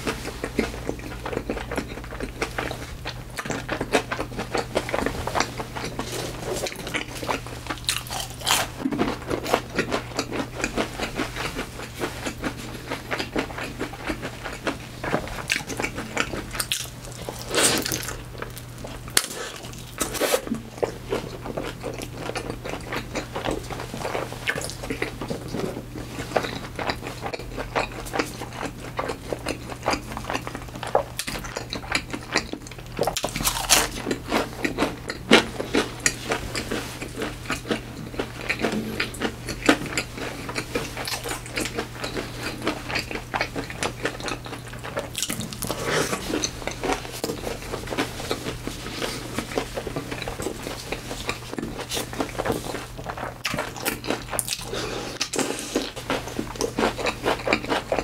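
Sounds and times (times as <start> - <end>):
crunchy chewing: 0.0 - 58.0.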